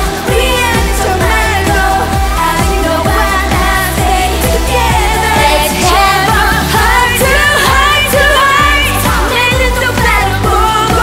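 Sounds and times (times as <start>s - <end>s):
pop dance backing track: 0.0s - 11.0s
woman singing into microphone: 0.0s - 11.0s.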